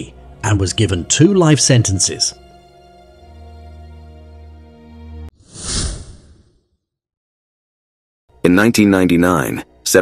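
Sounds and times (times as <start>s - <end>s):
background music: 0.0s - 5.3s, 8.3s - 10.0s
whoosh sound effect: 5.4s - 6.5s.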